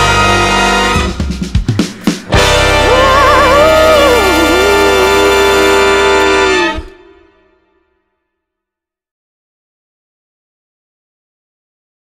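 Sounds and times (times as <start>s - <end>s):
horn band sustained chord: 0.0s - 1.4s, 2.3s - 7.8s
singer holding long note: 2.3s - 7.8s.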